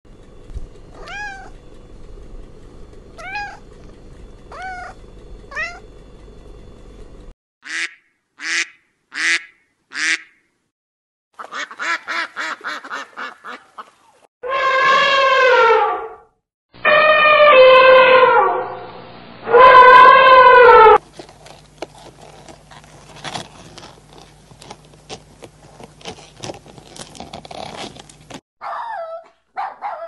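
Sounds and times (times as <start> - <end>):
cat meowing: 1.0 - 1.5, 3.2 - 3.6, 4.5 - 5.8
ducks quacking: 11.4 - 14.0
long loud animal call: 14.4 - 16.2, 16.8 - 18.8, 19.5 - 21.0.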